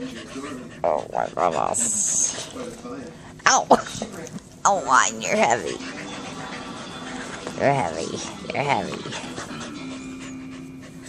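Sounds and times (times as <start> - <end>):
dog panting rapidly: 0.0 - 2.8, 4.9 - 11.0.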